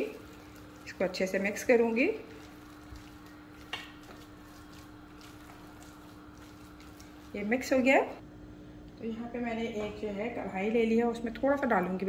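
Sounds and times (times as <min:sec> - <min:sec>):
spatula stirring mince: 0:00.0 - 0:07.9.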